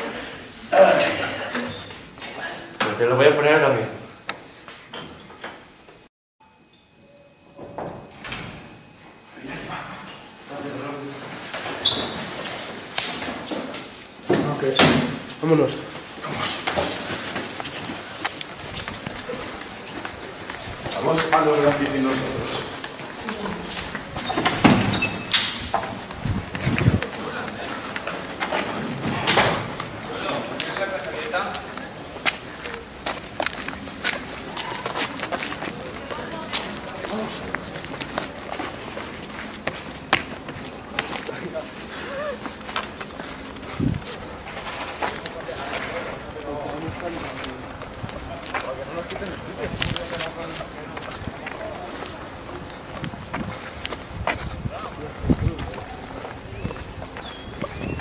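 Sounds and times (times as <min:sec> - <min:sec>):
indistinct voices: 0:13.5 - 0:58.0.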